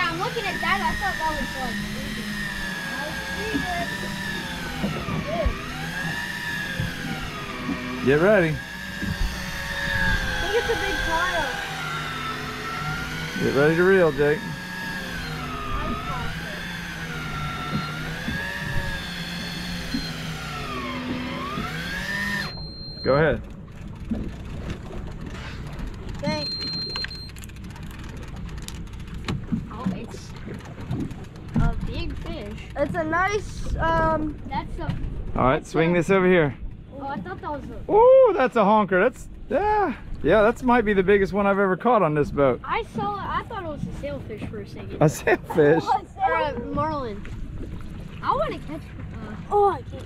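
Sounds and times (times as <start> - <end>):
electric fishing reel motor whining: 0.0 - 29.8
low steady rumble: 0.0 - 50.0.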